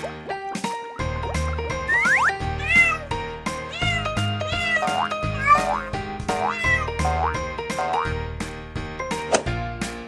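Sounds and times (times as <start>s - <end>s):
background music: 0.0s - 10.0s
cat meowing: 2.6s - 3.1s, 3.7s - 5.6s, 6.4s - 6.9s.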